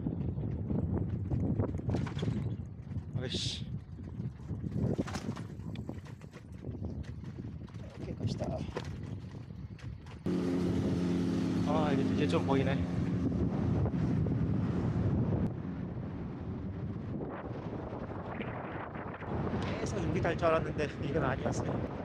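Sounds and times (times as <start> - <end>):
wind noise on microphone: 0.0 - 11.4, 12.4 - 22.0.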